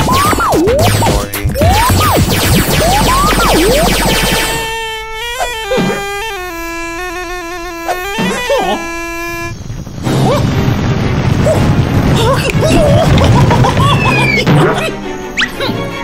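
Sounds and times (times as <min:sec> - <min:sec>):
reedy pipe melody: 0:02.8 - 0:09.7.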